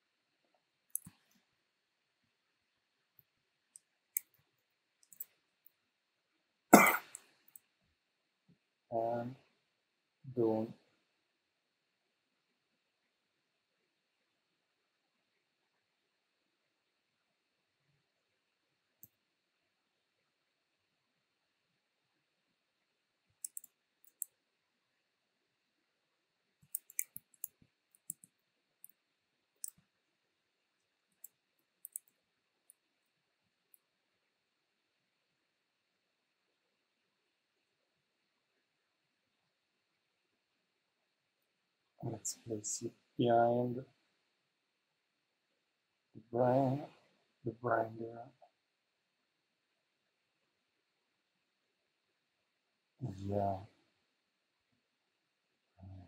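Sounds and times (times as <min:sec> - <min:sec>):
faint clicks: 0:00.9 - 0:01.5, 0:03.1 - 0:05.8, 0:23.3 - 0:24.4, 0:26.6 - 0:29.0, 0:29.6 - 0:29.9, 0:30.8 - 0:32.8
person coughing: 0:06.8 - 0:07.2
keyboard clicks: 0:23.4 - 0:24.3, 0:26.6 - 0:28.3, 0:31.8 - 0:32.1.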